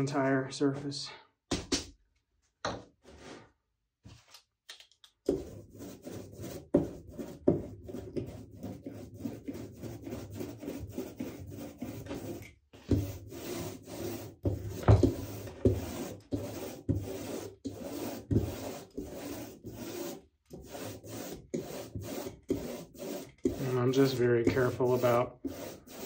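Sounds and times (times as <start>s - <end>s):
rubber roller sticky rubbing: 5.3s - 12.4s, 13.0s - 26.0s.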